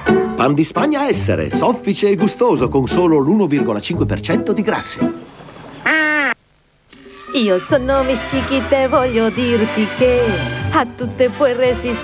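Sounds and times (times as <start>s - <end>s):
short pitched call: 5.8s - 6.4s.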